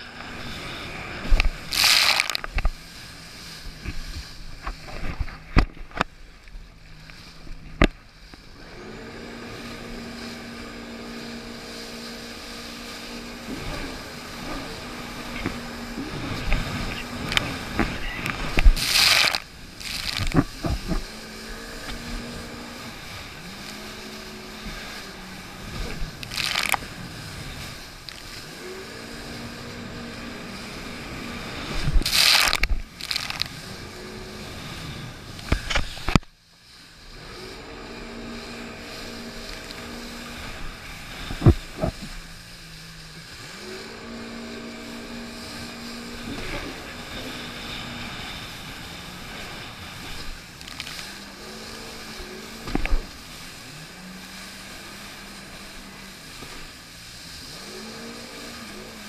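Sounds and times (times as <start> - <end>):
jet ski engine running: 0.0 - 59.0
rushing bursts of spray: 1.6 - 4.9, 8.5 - 35.9, 36.6 - 59.0
hull slapping on water: 12.5 - 28.5.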